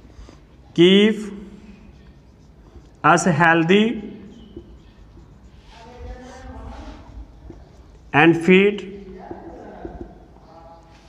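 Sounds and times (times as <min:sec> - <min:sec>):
marker squeaking on whiteboard: 0:00.0 - 0:11.0
marker tapping on whiteboard: 0:04.3 - 0:05.4, 0:09.0 - 0:10.4.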